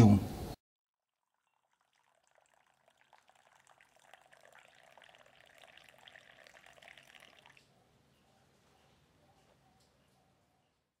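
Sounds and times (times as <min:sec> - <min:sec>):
coffee pouring into a mug: 0:01.1 - 0:07.7.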